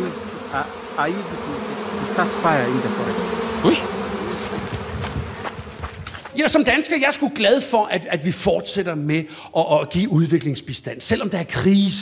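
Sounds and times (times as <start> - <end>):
honeybees buzzing: 0.0 - 6.8.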